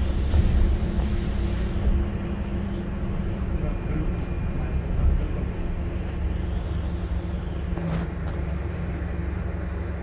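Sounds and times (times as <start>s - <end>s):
bus engine drone: 0.0s - 10.0s.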